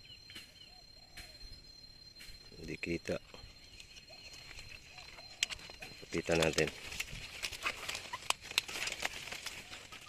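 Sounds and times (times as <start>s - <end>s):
stiff leaves rustling and snapping: 4.4s - 10.0s.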